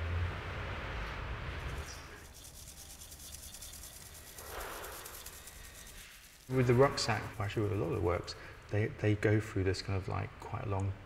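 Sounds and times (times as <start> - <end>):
scratchy rubbing on gritty surface: 1.7 - 8.4.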